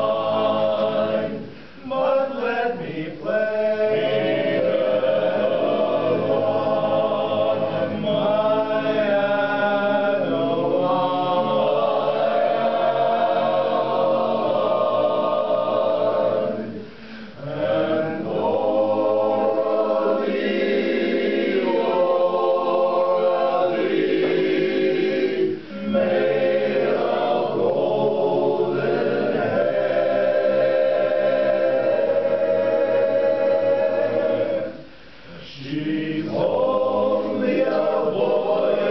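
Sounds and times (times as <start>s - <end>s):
men's chorus singing in harmony: 0.0s - 38.9s.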